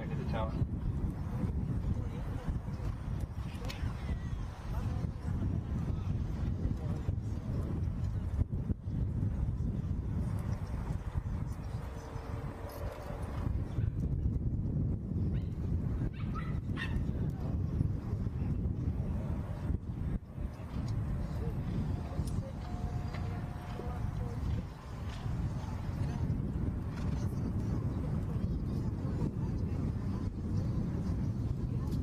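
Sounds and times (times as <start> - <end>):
low outdoor rumble: 0.0 - 32.0.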